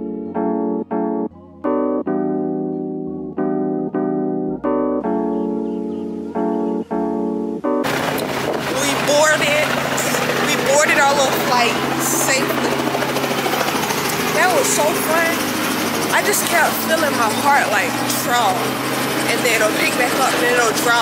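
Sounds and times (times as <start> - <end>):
woman talking: 8.2 - 21.0.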